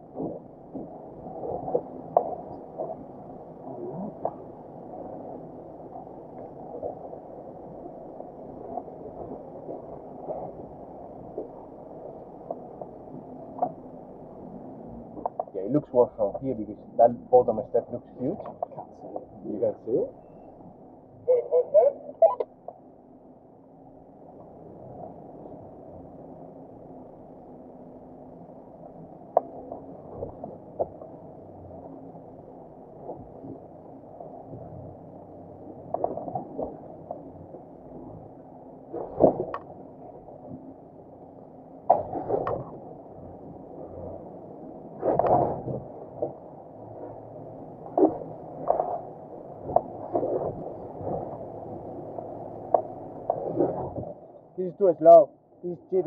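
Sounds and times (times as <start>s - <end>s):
off-road vehicle engine idling: 0.0s - 35.8s.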